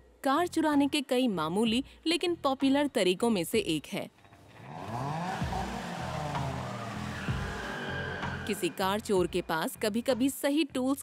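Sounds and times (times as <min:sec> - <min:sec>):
car engine revving: 0:04.4 - 0:09.0.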